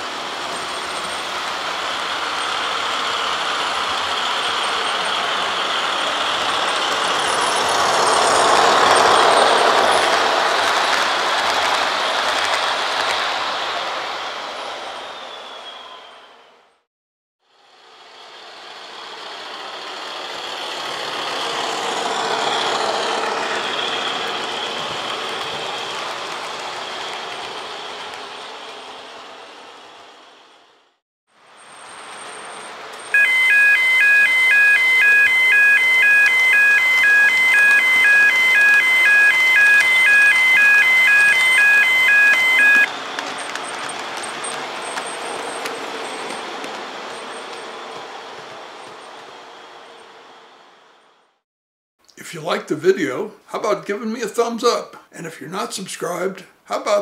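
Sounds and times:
train rushing past: 0:00.0 - 0:16.8, 0:17.6 - 0:31.0, 0:31.6 - 0:51.4
level crossing warning alarm: 0:33.0 - 0:43.5.

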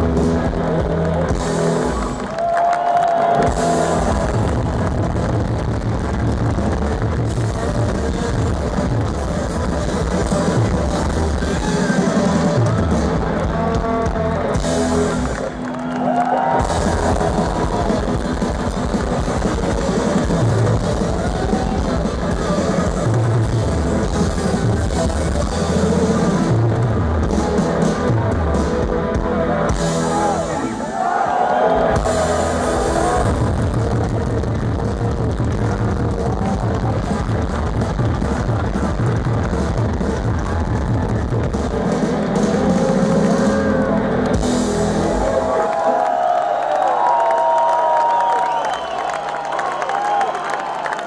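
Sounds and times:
live rock band playing: 0:00.0 - 0:30.9, 0:31.8 - 0:45.8
crowd cheering and shouting: 0:00.0 - 0:51.0.

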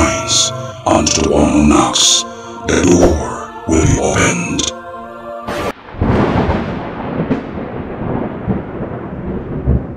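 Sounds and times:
sharp thunder crack: 0:05.5 - 0:09.9
thunder rumbling: 0:05.5 - 0:09.9.

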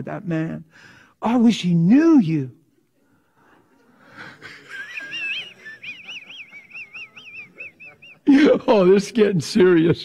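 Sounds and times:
man's squeaky laughter: 0:04.5 - 0:08.6.

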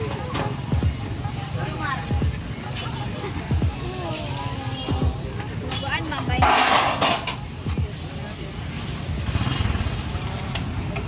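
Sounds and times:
faint background voices: 0:00.0 - 0:11.0
vehicle engine rumbling by: 0:08.5 - 0:11.0.

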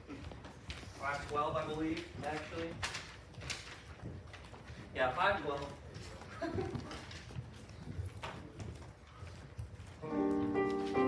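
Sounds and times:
footsteps on carpet: 0:06.1 - 0:11.0.

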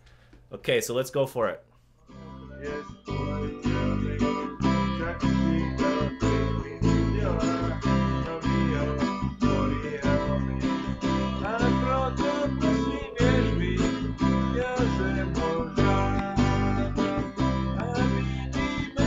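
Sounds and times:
acoustic guitar strummed: 0:02.1 - 0:19.0
bass guitar low notes: 0:02.1 - 0:19.0.

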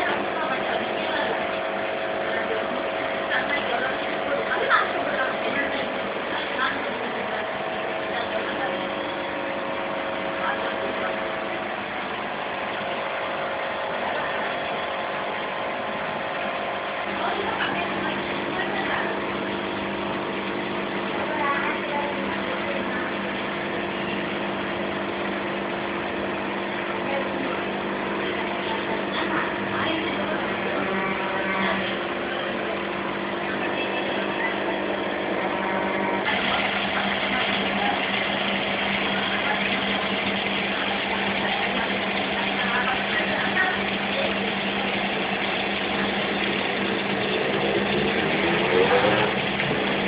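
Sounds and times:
aquarium pump humming: 0:00.0 - 0:50.0
water washing: 0:00.0 - 0:50.0.

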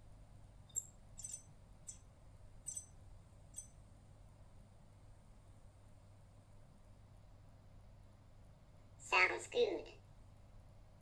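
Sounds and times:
high-pitched electronic chirps: 0:00.7 - 0:02.0, 0:02.7 - 0:02.9.

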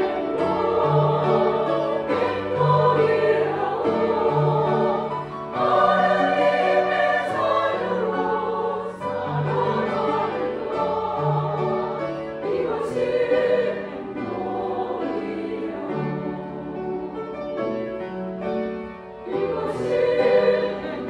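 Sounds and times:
choir singing a hymn: 0:00.0 - 0:21.0
grand piano accompaniment: 0:00.0 - 0:21.0.

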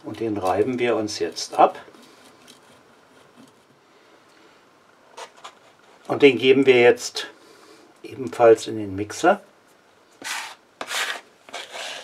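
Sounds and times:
plastic scraper rasping on wood: 0:10.2 - 0:12.0.

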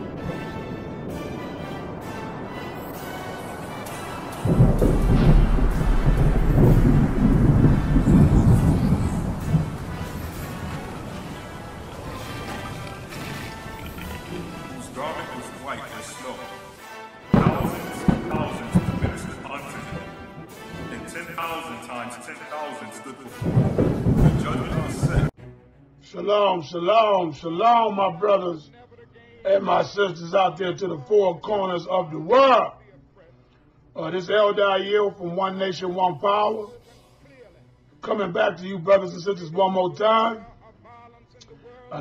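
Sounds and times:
thunder rumble: 0:00.0 - 0:25.3
quiet background music: 0:00.0 - 0:42.0.

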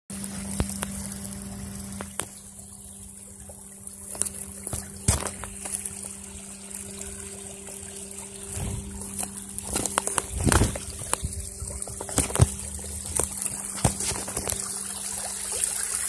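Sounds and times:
steady low hum: 0:00.1 - 0:16.0
water trickling in a creek: 0:00.1 - 0:16.0.

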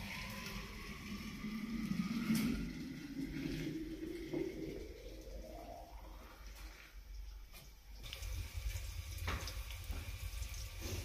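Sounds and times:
water running into pot: 0:08.0 - 0:11.0.

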